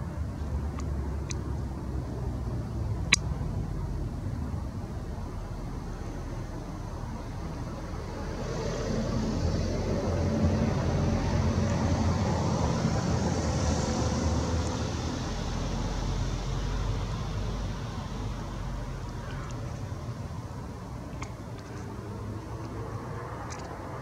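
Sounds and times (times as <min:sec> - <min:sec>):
passing vehicle rumble: 0:00.0 - 0:24.0.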